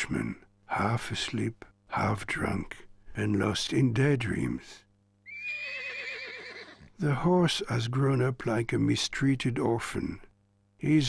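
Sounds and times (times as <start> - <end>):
horse whinnying: 5.3 - 6.9.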